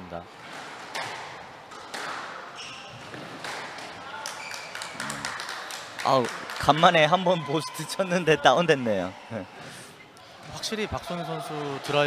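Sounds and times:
squash ball cracking off walls: 0.9 - 2.5, 3.1 - 5.1
shoes squeaking on wooden floor: 2.5 - 3.4.

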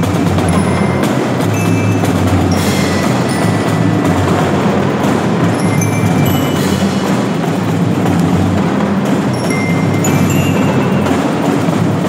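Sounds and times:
bass drums: 0.0 - 12.0
cymbals: 0.0 - 12.0
snare drums: 0.0 - 12.0
high ringing notes: 0.4 - 7.4, 9.3 - 11.6.

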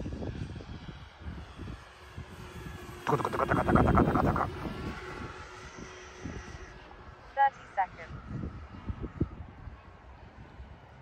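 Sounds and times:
model plane propellers buzzing: 0.3 - 7.4
wind noise on microphone: 8.1 - 10.8.

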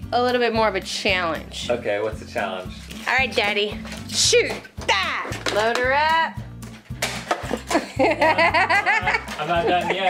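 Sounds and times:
upbeat background music: 0.0 - 10.0
people laughing: 7.5 - 10.0.

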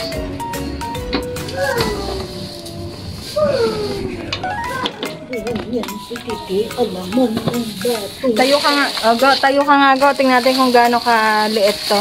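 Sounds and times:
plastic bag crinkling: 1.6 - 12.0.

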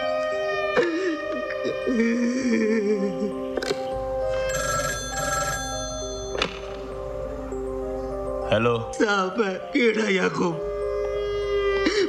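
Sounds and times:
background music: 0.0 - 12.0
telephone ringing: 4.3 - 7.0.

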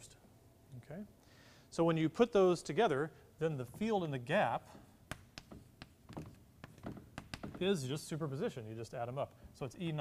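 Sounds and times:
chalk tapping on blackboard: 5.1 - 7.6.

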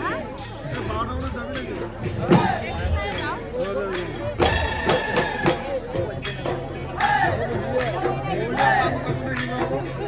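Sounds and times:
crowd chatter: 0.0 - 10.0
drum strokes: 0.6 - 10.0.

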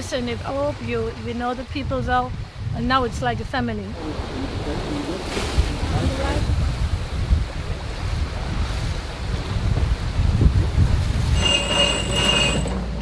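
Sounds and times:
sea water rushing: 0.0 - 13.0
wind rumbling on microphone: 0.0 - 13.0
steady high-pitched squeal: 11.2 - 13.0.

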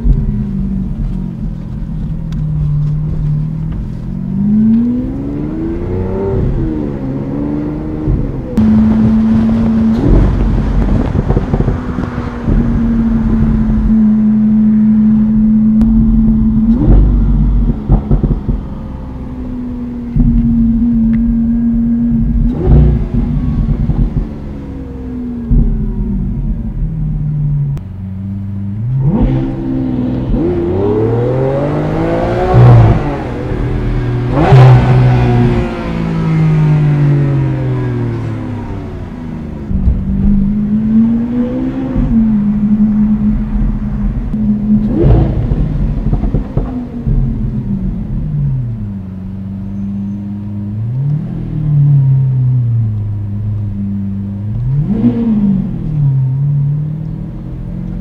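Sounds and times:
car engine revving in cabin: 0.0 - 58.0
sharp exhaust cracks: 39.6 - 49.5.

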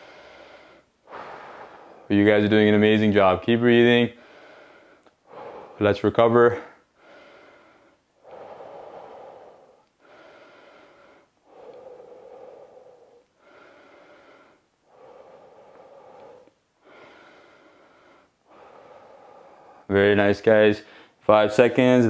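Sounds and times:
man breathing deeply: 0.0 - 2.6, 4.1 - 20.0, 20.8 - 21.2.

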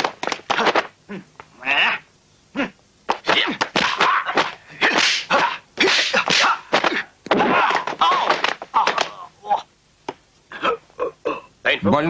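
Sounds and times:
fighters crying out: 0.5 - 9.7
punch and kick impact hits: 3.1 - 8.6.

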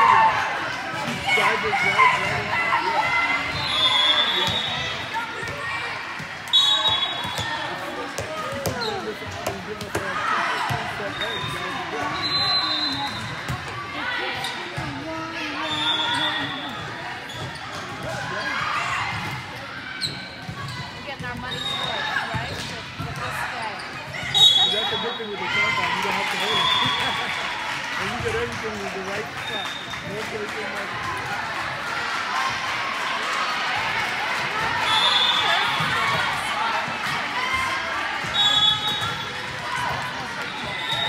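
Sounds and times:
players calling: 0.0 - 13.6
chatter of people: 0.0 - 41.0.

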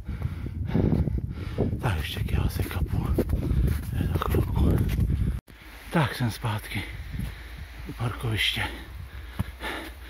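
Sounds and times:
person breathing hard: 0.0 - 1.8, 6.9 - 7.9, 8.7 - 10.0
low rumble on microphone: 0.0 - 5.4
footsteps in deep snow: 2.0 - 6.4.

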